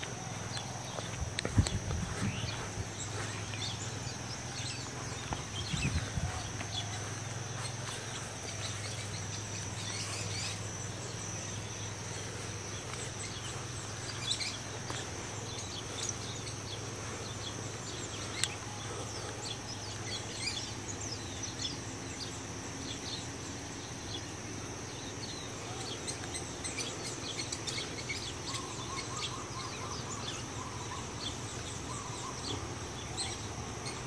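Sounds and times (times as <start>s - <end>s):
continuous low hum: 0.0s - 34.0s
high insect drone: 0.0s - 34.0s.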